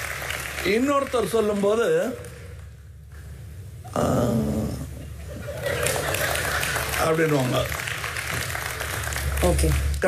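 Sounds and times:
studio audience clapping: 0.0 - 3.0, 5.4 - 10.0.

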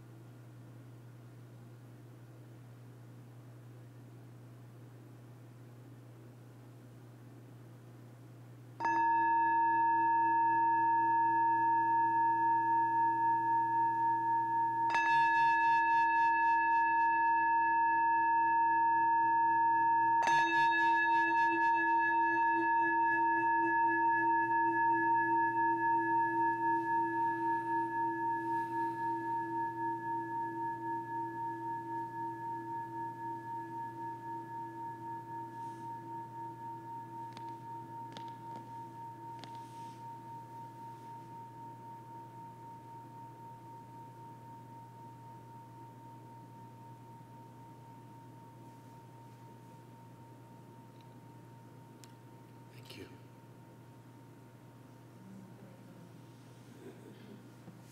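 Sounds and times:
metal singing bowl ringing: 8.8 - 52.7.

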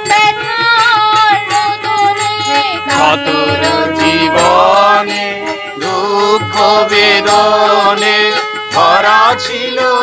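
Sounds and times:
harmonium reed notes: 0.0 - 10.0
woman singing devotional song: 0.0 - 10.0.

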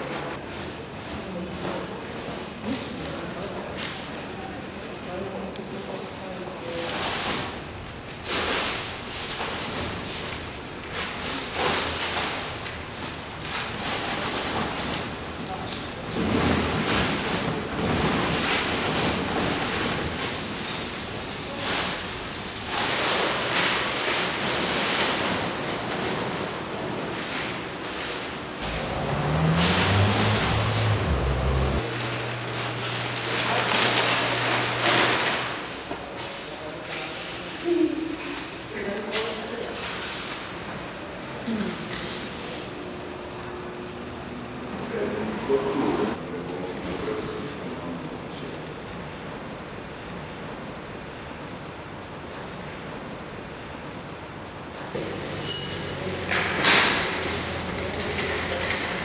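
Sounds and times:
plastic bags rustling: 6.7 - 31.2, 31.9 - 36.8.

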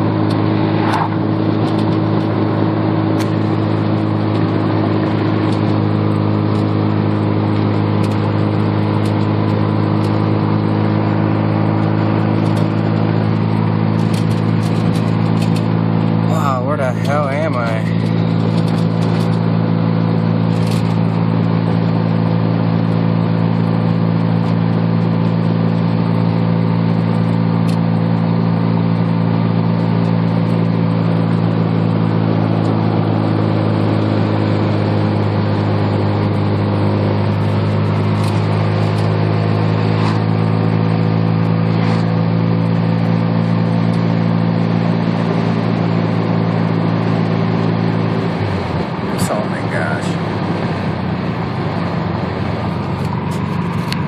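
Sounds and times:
rotary engine cruising drone: 0.0 - 54.0.

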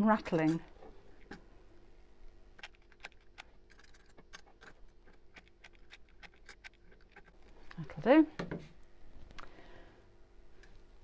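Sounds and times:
pebbles clicking in bucket: 2.6 - 8.0.

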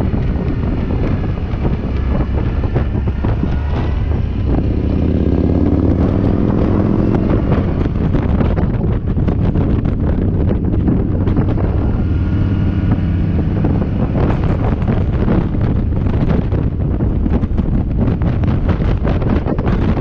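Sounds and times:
motorcycle engine running: 0.0 - 20.0
wind noise on microphone: 0.0 - 20.0.

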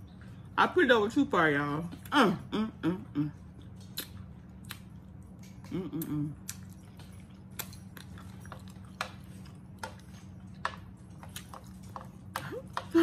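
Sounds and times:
low hum: 1.8 - 13.0
person chewing noodles: 1.9 - 13.0.

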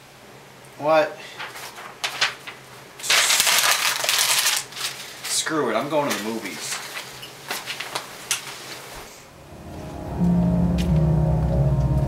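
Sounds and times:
paper being crumpled: 1.4 - 8.1.

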